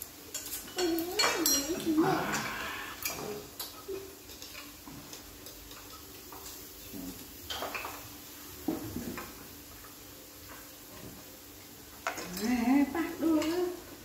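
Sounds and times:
metal utensils clinking on dishes: 0:00.3 - 0:08.0
person speaking: 0:00.8 - 0:02.9.

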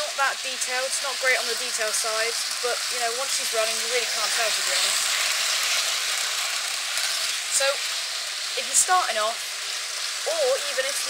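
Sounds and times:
model train hissing whir: 0:00.0 - 0:11.0.

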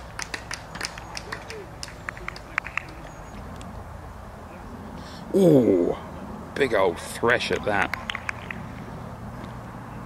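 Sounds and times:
faint distant voices: 0:00.5 - 0:10.0.

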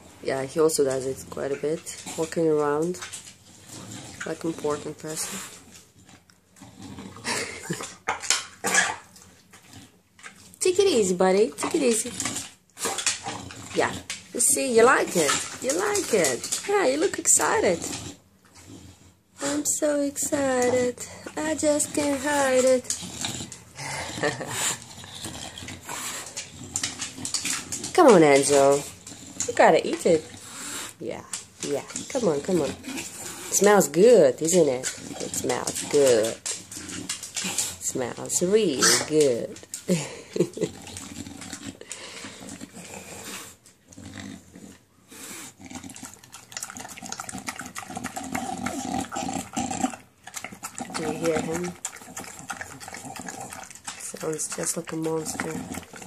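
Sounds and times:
dog snuffling and grunting: 0:00.0 - 0:56.0.

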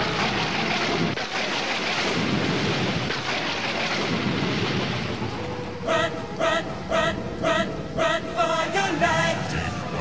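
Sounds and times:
heavy rain with thunder: 0:00.0 - 0:05.6.

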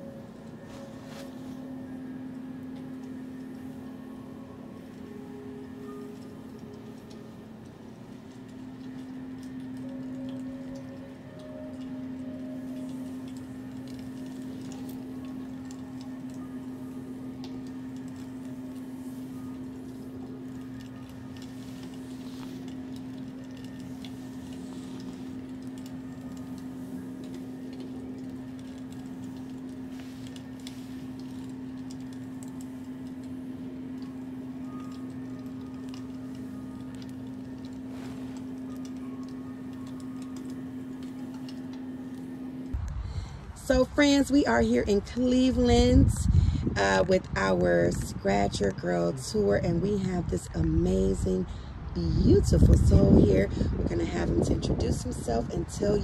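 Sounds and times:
low drone tone: 0:00.0 - 0:56.0.

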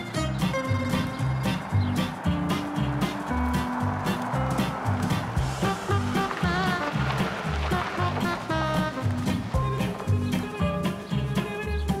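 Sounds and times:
bouncing rhythmic bass line: 0:00.0 - 0:12.0
held melody notes: 0:00.0 - 0:12.0.

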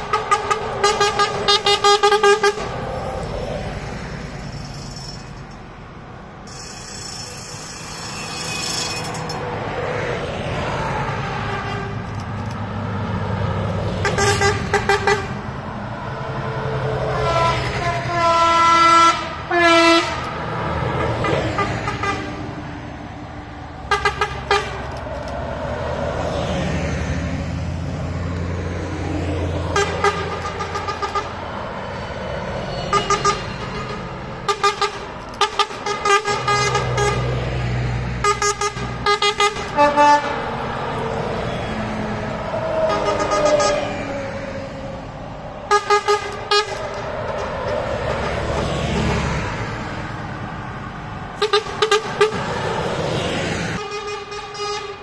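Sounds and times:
buses driving past: 0:00.0 - 0:55.0.

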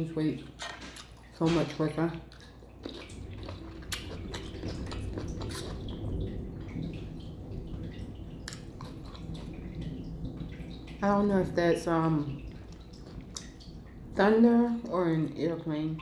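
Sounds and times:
low rumble: 0:01.6 - 0:16.0
wet mouth chewing clicks: 0:02.2 - 0:06.0.

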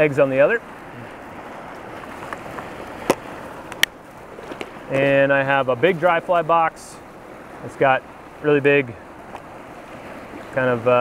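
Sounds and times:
river rushing: 0:00.0 - 0:11.0.

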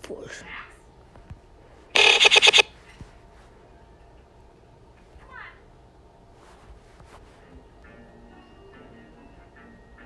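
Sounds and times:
stuttering pitched sample: 0:02.0 - 0:02.7.

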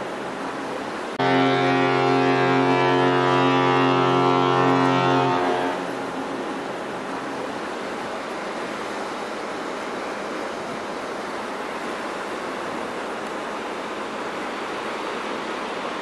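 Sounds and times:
ship fog horn deep blast: 0:01.2 - 0:06.2.

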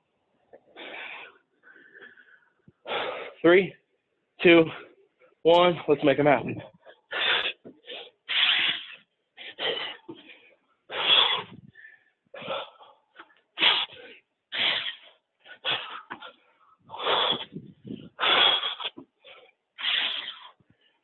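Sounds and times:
man breathing out hard: 0:00.7 - 0:03.4, 0:07.1 - 0:20.6.

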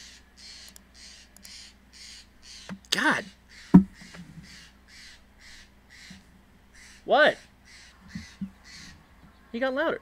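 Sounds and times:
jay calling: 0:00.0 - 0:10.0.

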